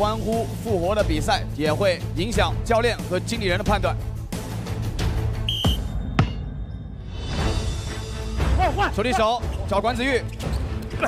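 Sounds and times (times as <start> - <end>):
background music: 0.0 - 11.0
referee's whistle blast: 5.4 - 6.0.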